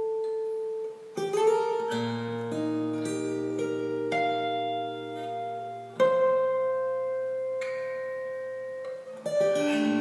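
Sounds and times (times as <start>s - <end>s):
acoustic guitar fingerstyle playing: 0.0s - 10.0s.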